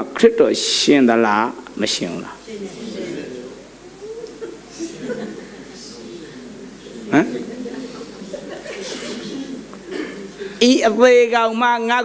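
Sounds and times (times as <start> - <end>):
people talking: 0.0 - 12.0
faint voices and chuckling: 2.4 - 10.6.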